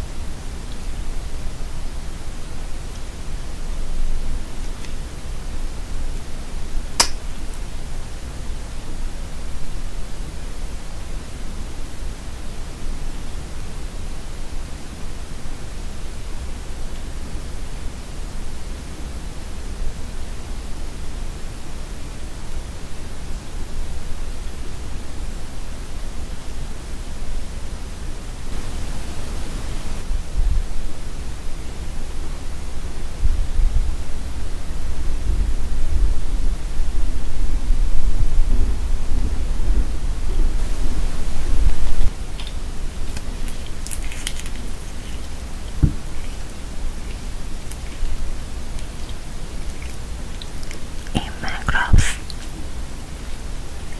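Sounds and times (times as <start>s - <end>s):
steady airy hiss: 0.0s - 53.9s.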